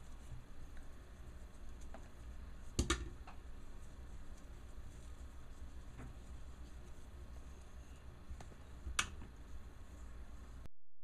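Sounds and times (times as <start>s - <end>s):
low steady hum: 0.0s - 10.7s.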